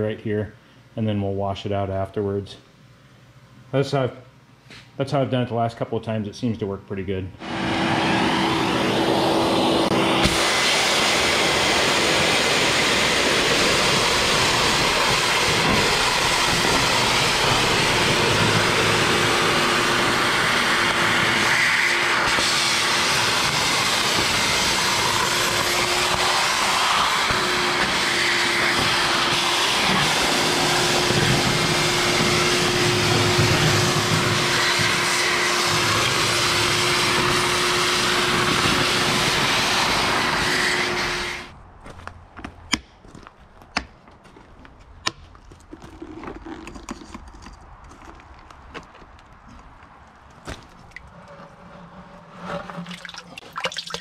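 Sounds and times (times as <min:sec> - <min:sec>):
shop vac sucking water: 0:07.4 - 0:41.6, 0:50.8 - 0:54.0.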